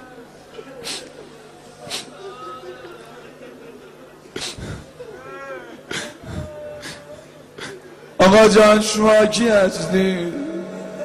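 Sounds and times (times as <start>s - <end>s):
sob-like breaths: 4.4s - 5.0s, 5.9s - 7.8s
person's wavering cry: 5.0s - 7.3s.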